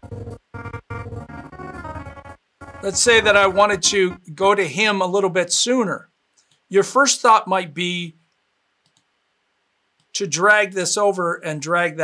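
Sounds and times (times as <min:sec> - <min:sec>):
person speaking: 0:02.8 - 0:05.9
computer mouse clicks: 0:08.3 - 0:09.1.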